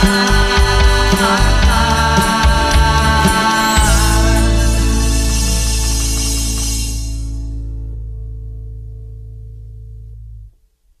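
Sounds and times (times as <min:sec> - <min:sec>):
band chord ringing out: 0:00.0 - 0:08.6.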